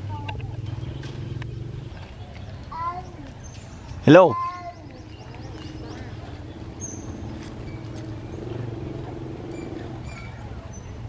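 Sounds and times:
macaque squeaking: 5.6 - 8.6.

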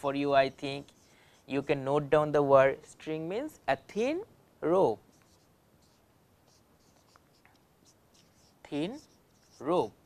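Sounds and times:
marker scratching on whiteboard: 0.0 - 1.8, 5.1 - 10.0.

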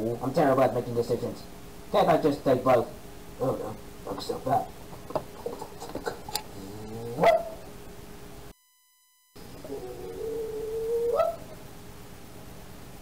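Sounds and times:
howl-like cry: 9.6 - 11.6.

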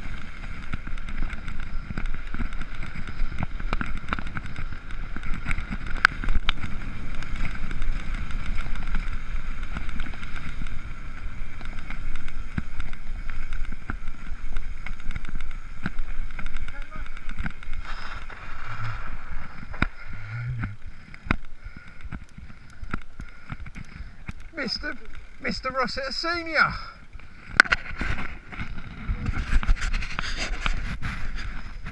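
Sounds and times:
bike rattling over bumps: 0.0 - 31.9
bike tyres rumbling on dirt: 0.0 - 31.9
wind on microphone: 17.3 - 23.0, 27.6 - 31.9.

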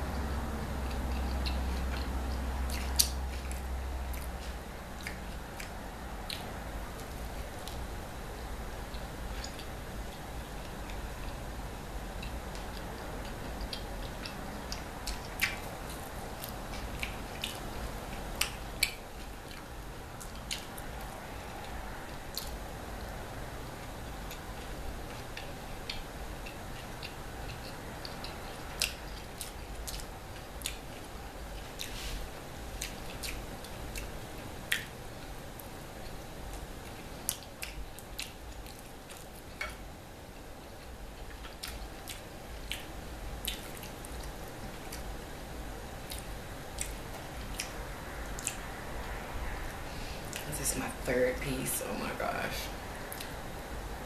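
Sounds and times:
faint background hum: 0.0 - 54.0
chewing with mouth clicks: 0.8 - 7.8, 8.8 - 11.5, 12.1 - 22.6, 23.7 - 32.1, 32.8 - 45.3, 45.9 - 50.5, 53.1 - 53.4.

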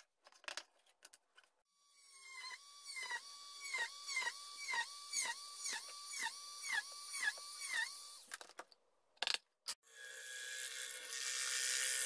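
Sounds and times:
rotary tool drilling wood: 2.0 - 8.3, 9.9 - 12.0.

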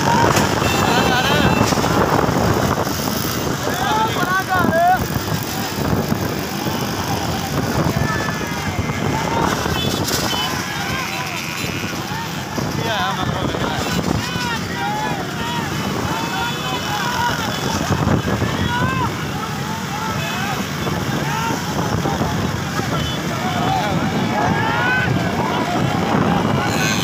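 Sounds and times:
wind buffeting microphone: 0.0 - 19.3, 20.6 - 27.0
motorcycle engines running: 0.0 - 27.0
people shouting and calling: 0.0 - 27.0.

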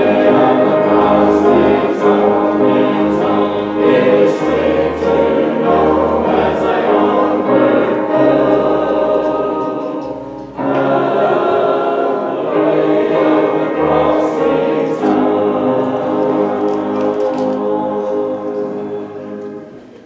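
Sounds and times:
choir singing held notes: 0.0 - 20.0
low accompaniment: 0.0 - 20.0.

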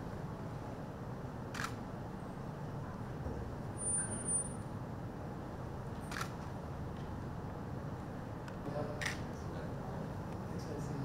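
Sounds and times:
camera shutter click: 1.5 - 1.8, 6.1 - 6.4, 9.0 - 9.2.

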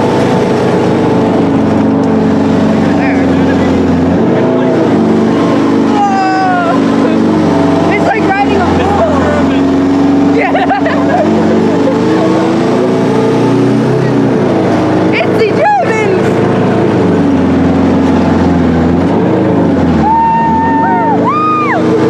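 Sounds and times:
tank engine running: 0.0 - 22.0.

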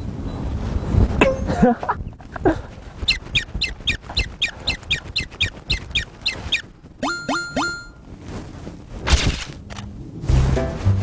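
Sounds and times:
short high chirps: 3.1 - 8.0.

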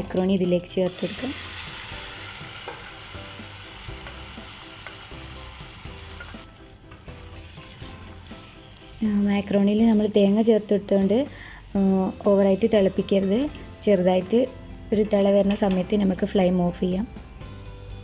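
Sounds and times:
food sizzling in hot oil: 0.0 - 16.2.

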